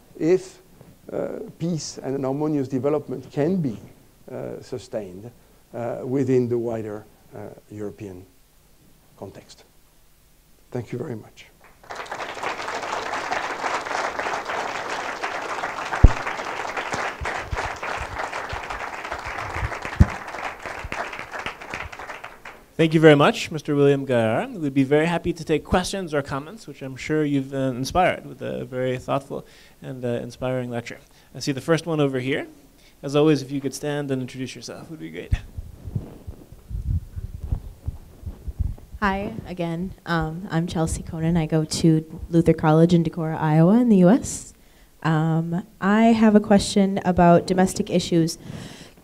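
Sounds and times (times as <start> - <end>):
audience applauding: 11.6 - 22.7
microphone handling thumps: 16.0 - 16.2, 35.2 - 40.4.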